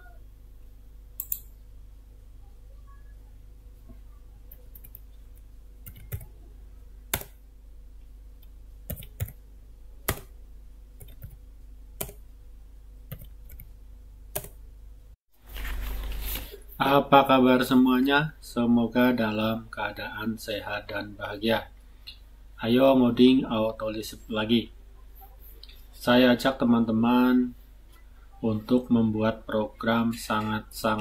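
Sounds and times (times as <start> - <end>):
faint background hiss: 0.0 - 31.0
faint low hum: 0.0 - 31.0.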